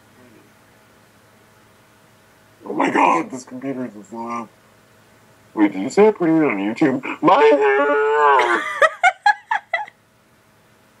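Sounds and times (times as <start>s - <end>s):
young woman laughing: 8.3s - 10.0s.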